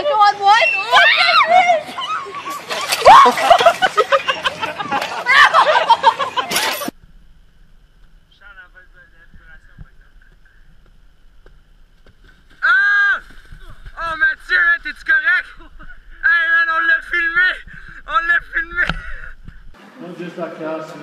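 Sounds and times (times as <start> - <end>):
steady hum: 0.0 - 21.0.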